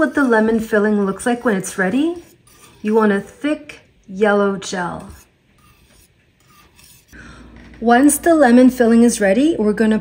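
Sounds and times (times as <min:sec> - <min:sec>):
wire whisk scraping saucepan: 0:00.0 - 0:03.7, 0:04.6 - 0:07.2.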